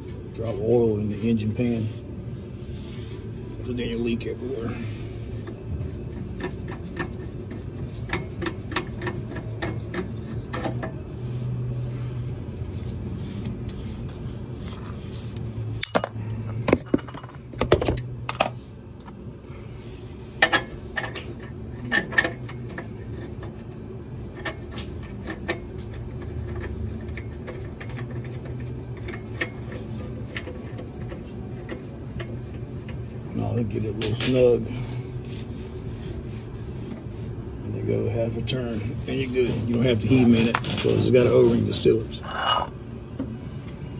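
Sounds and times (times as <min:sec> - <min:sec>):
steady low hum: 0:00.0 - 0:43.9.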